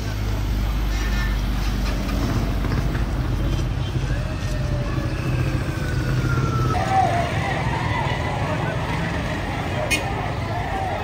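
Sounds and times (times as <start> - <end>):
traffic rumble: 0.0 - 11.0
people's voices: 6.2 - 11.0.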